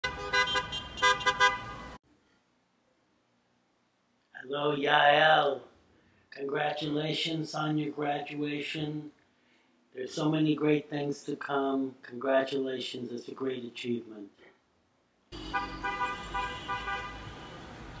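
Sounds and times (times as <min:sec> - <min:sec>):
car horns honking: 0:00.0 - 0:02.0, 0:15.4 - 0:18.0.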